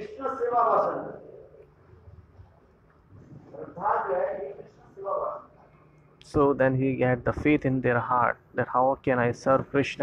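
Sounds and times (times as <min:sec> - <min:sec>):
man speaking: 0:00.0 - 0:01.6, 0:03.4 - 0:05.6, 0:06.2 - 0:10.0.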